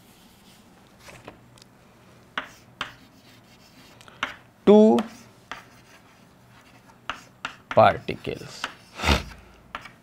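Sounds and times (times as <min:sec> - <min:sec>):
chalk tapping on chalkboard: 0:02.4 - 0:04.4, 0:05.0 - 0:10.0.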